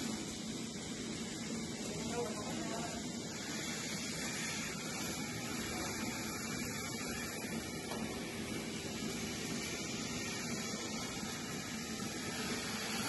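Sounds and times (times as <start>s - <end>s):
milking machines hissing and humming: 0.0s - 13.0s.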